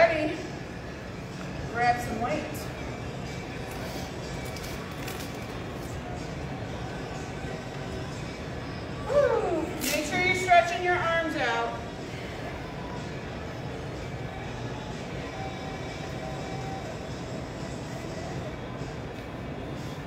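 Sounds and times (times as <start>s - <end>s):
steady background noise: 0.0s - 20.0s.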